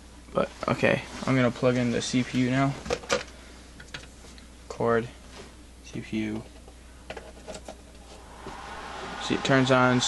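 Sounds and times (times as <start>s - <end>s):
steady rushing noise: 8.0s - 10.0s.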